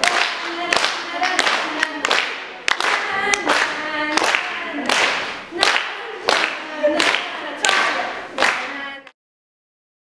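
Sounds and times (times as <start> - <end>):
group singing: 0.0 - 9.1
hand claps: 0.0 - 9.2.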